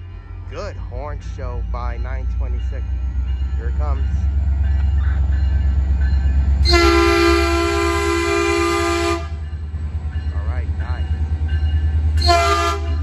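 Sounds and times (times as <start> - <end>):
locomotive rumbling: 0.0 - 13.0
train air horn blast: 6.6 - 9.4, 12.2 - 13.0.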